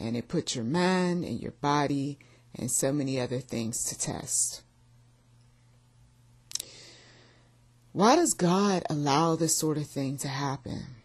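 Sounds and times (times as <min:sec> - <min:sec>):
faint low hum: 0:00.0 - 0:11.0
mouth click: 0:06.5 - 0:06.7
woman breathing in: 0:06.6 - 0:07.6.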